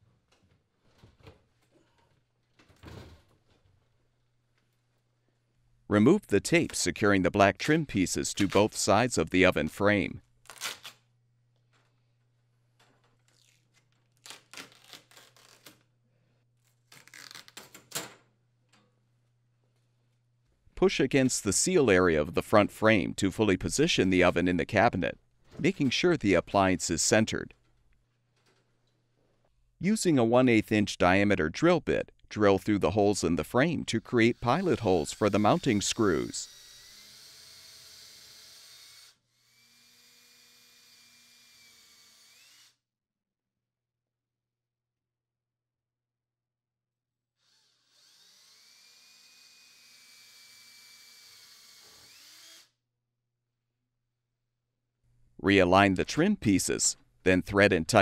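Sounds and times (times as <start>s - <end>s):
tape ripping off metal: 10.4s - 11.1s, 13.1s - 15.9s, 16.6s - 18.0s
faint cordless drill drilling: 34.4s - 42.8s, 47.4s - 52.7s.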